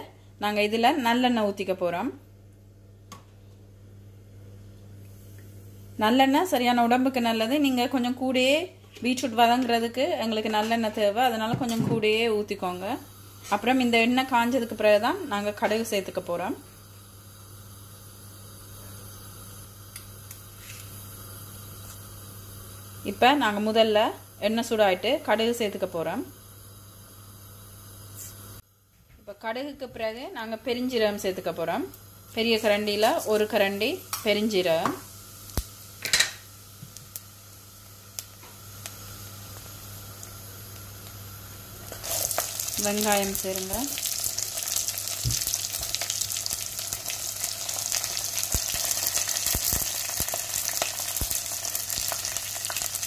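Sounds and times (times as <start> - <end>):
oil hissing in a pot: 12.7 - 28.6, 30.5 - 53.0.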